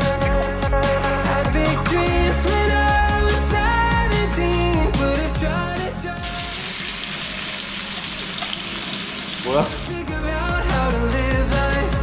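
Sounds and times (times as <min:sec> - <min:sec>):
pork belly sizzling in a pan: 0:06.2 - 0:09.6.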